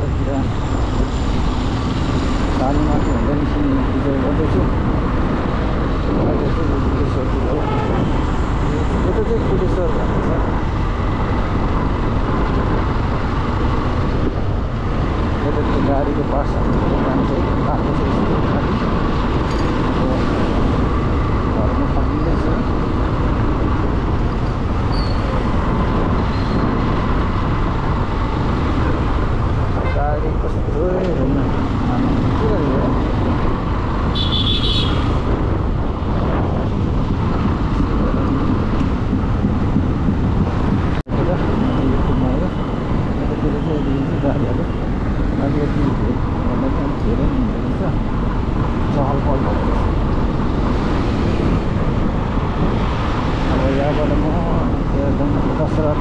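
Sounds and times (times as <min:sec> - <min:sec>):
street traffic: 0:00.0 - 0:56.0
wind rushing: 0:00.0 - 0:56.0.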